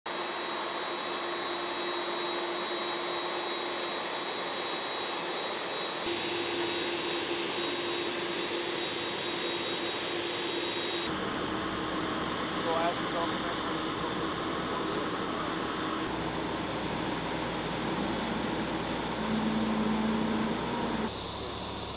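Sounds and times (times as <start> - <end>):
jet engines running: 0.1 - 21.9.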